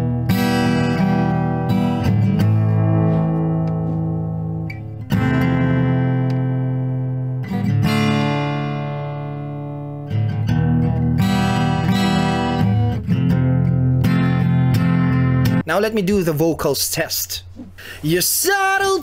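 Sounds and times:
acoustic guitar strummed chords: 0.0 - 15.7.

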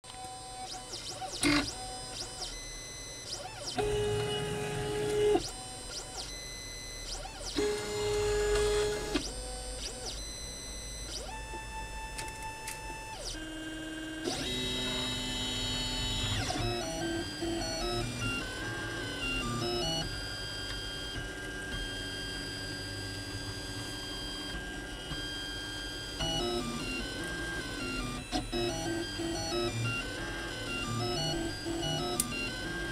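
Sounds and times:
printer stepper motors whining: 0.2 - 32.9.

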